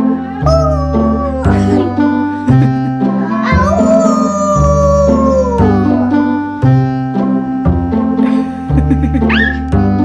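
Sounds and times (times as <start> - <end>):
background music chords: 0.0 - 10.0
child hooting through toy tube: 3.3 - 6.2, 9.3 - 9.7.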